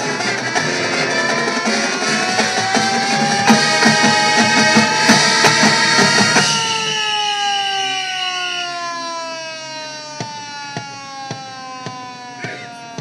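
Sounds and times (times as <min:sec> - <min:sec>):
marching band music: 0:00.0 - 0:08.5, 0:09.1 - 0:13.0.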